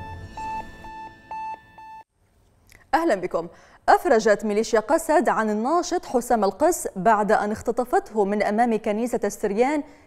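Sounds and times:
short high electronic beeps: 0:00.0 - 0:02.0.

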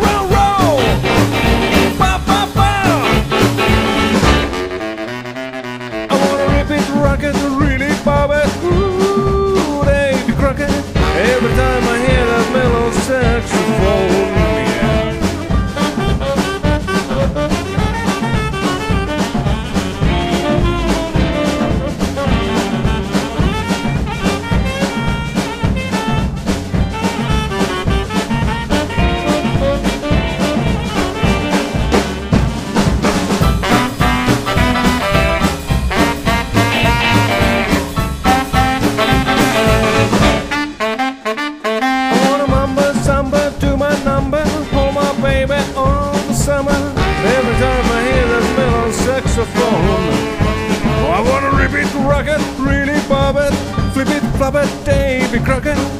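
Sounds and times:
upright bass: 0:00.0 - 0:05.1, 0:05.8 - 0:40.9, 0:42.1 - 0:55.9
piano: 0:00.0 - 0:05.4, 0:06.0 - 0:55.9
drums swing beat: 0:00.0 - 0:55.9
tenor saxophone solo: 0:02.8 - 0:06.8, 0:08.6 - 0:09.5, 0:11.0 - 0:42.7, 0:47.0 - 0:51.9.

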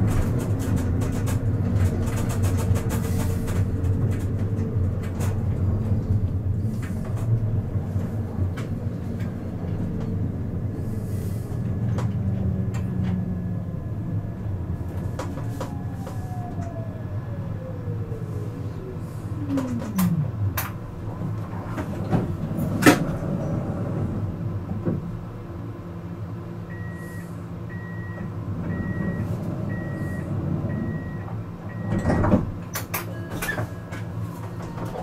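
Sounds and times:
tram humming: 0:00.0 - 0:35.0
tram motor whine: 0:00.0 - 0:35.0.

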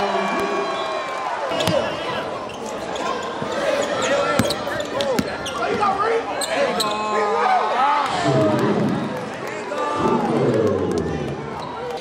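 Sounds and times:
players and crowd calling out: 0:00.0 - 0:12.0.

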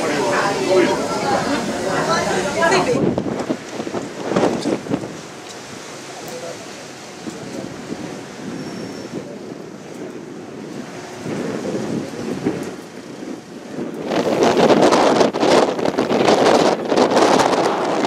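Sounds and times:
rush of wind and sea: 0:00.0 - 0:18.0
wind buffeting microphone: 0:00.0 - 0:18.0.

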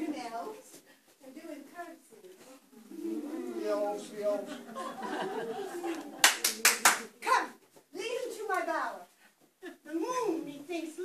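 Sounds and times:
hand claps: 0:05.9 - 0:07.1.

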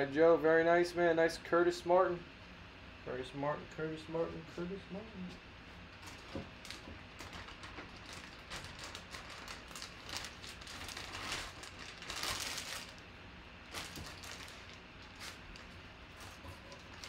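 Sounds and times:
crinkly rustling: 0:05.9 - 0:17.0.

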